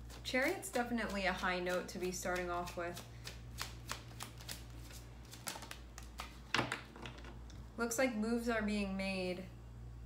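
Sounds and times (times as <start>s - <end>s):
cards being shuffled: 0.0s - 6.9s.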